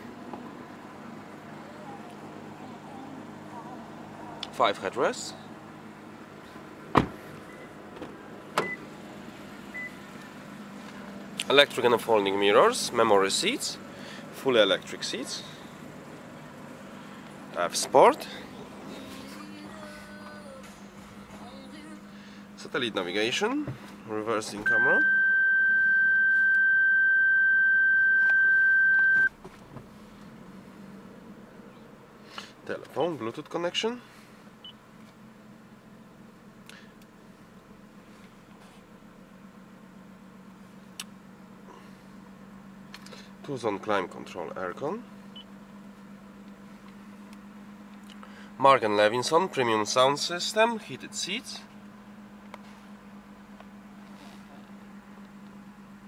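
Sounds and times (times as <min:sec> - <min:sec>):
car door knocks: 0:06.9 - 0:07.2
high-pitched warning beep: 0:24.7 - 0:29.3.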